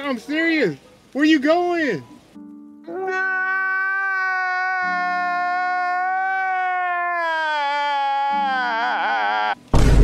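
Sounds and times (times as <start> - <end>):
man wailing: 2.9 - 9.6.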